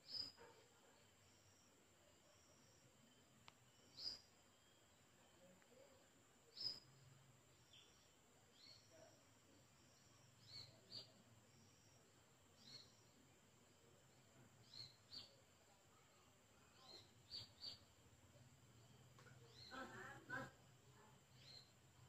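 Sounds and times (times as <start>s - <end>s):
faint bird chirps: 0.0s - 22.0s.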